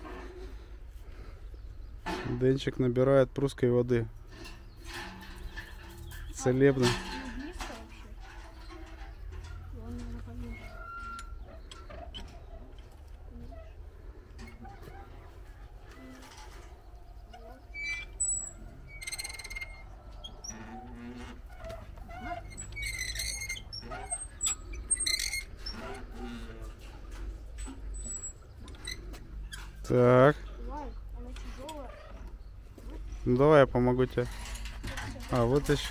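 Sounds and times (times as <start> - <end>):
birds chirping faintly: 0.1 - 35.9
crank squeaks and clicks: 3.5 - 35.9
wooden well windlass turning: 3.5 - 35.9
quiet voices: 5.9 - 35.9.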